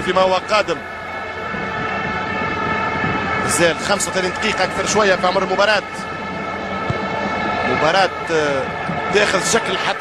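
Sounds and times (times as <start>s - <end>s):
blown horns drone: 0.0s - 10.0s
stadium crowd: 0.0s - 10.0s.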